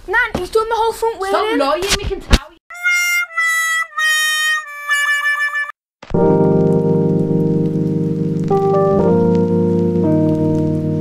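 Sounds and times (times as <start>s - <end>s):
sad trombone sound effect: 2.7s - 5.8s.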